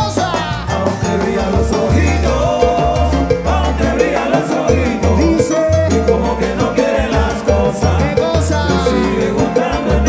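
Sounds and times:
congas: 0.0 - 10.0
drum kit: 0.0 - 10.0
salsa band playing: 0.0 - 10.0
steady bass line: 0.0 - 10.0.

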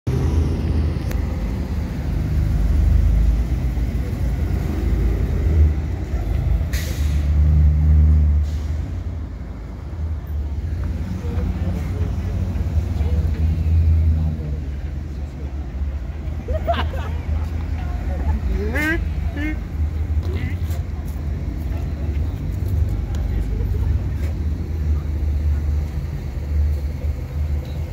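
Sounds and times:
bus engines rumbling: 0.1 - 27.9.

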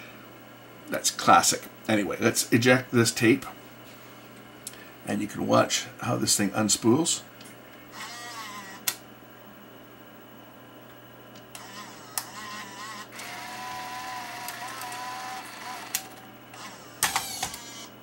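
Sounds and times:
loading motor whining: 7.9 - 9.0, 11.4 - 18.0.

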